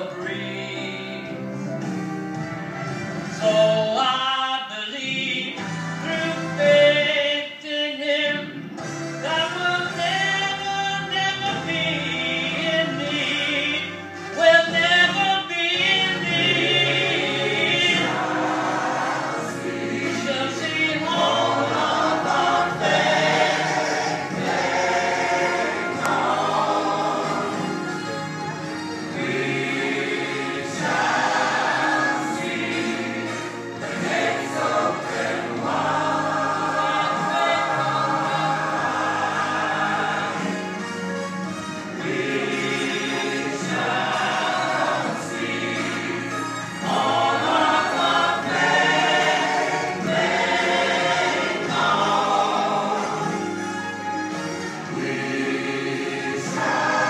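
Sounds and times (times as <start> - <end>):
mixed choir singing: 11.0 - 14.0, 15.8 - 57.0.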